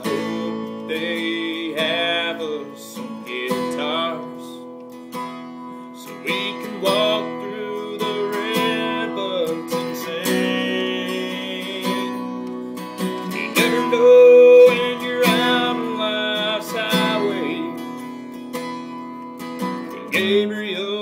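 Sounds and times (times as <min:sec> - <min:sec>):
acoustic guitar strumming: 0:00.0 - 0:21.0
man singing country song: 0:00.0 - 0:21.0.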